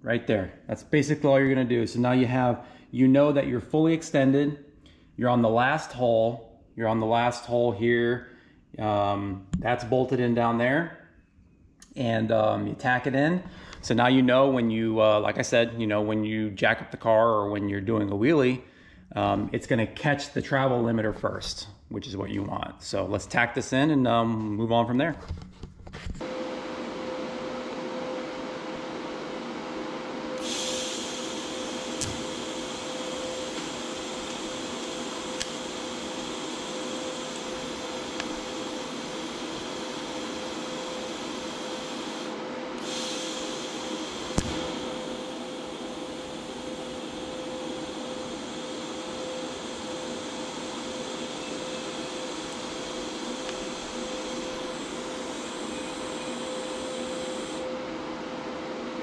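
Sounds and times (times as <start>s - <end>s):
steady hum: 26.1s - 59.0s
welding arc hissing: 30.4s - 57.7s.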